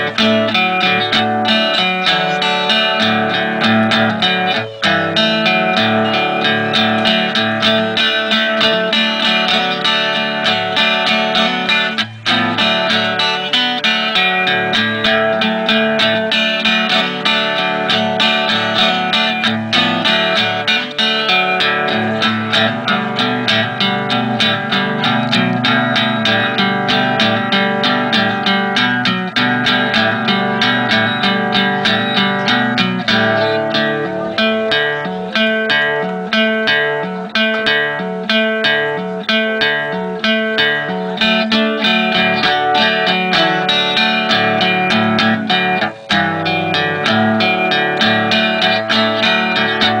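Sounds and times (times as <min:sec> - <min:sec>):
guitar picking and strumming: 0:00.0 - 0:50.0.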